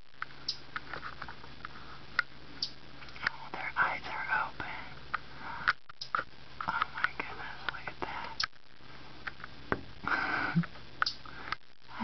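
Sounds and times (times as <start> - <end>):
woman whispering softly: 3.2 - 5.0, 6.7 - 8.4.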